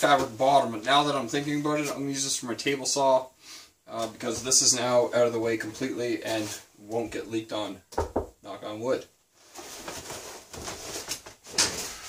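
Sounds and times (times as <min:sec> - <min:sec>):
fabric rustling: 0:09.3 - 0:12.0.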